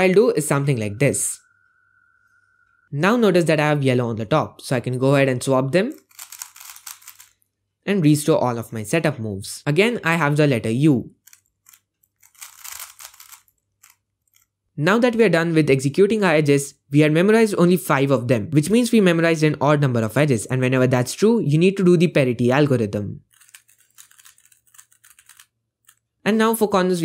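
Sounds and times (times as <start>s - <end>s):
puzzle cube clicking and scraping: 5.9s - 7.4s, 11.2s - 14.6s, 23.2s - 26.1s.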